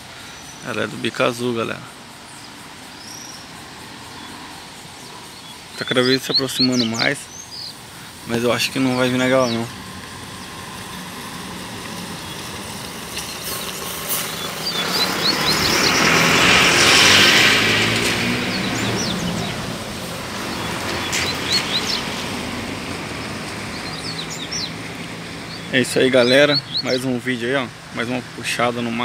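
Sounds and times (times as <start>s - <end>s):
birds chirping: 0.0s - 29.0s
vehicle passing by: 1.5s - 29.0s.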